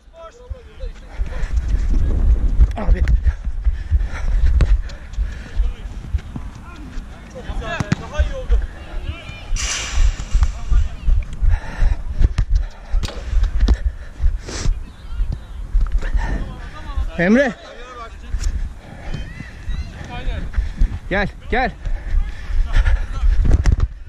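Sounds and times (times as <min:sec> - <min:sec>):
running footsteps on artificial turf: 0:00.4 - 0:24.0.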